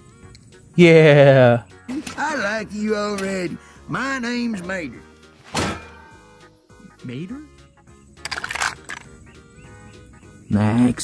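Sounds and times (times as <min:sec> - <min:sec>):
background music held notes: 0:00.0 - 0:11.0.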